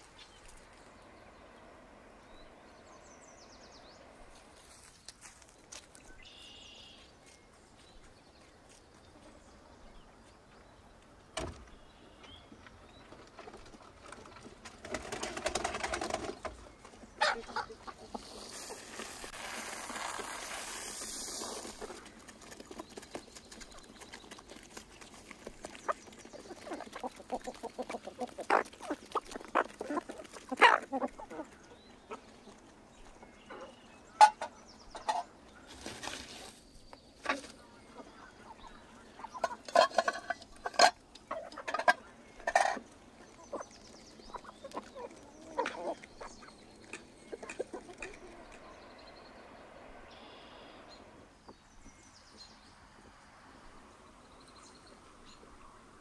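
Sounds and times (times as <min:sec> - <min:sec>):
hens pecking at grain: 0:04.2 - 0:11.2, 0:11.8 - 0:50.8
hens clucking: 0:12.6 - 0:36.6, 0:37.2 - 0:48.8.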